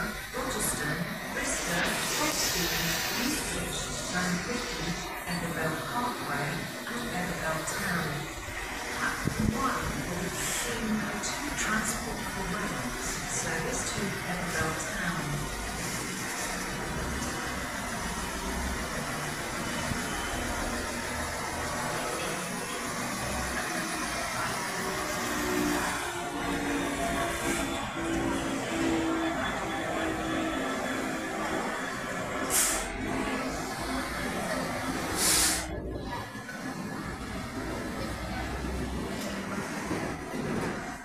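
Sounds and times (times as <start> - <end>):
diesel locomotive engine throbbing: 0.0 - 36.0
short sharp hisses: 32.5 - 32.9, 35.2 - 35.7.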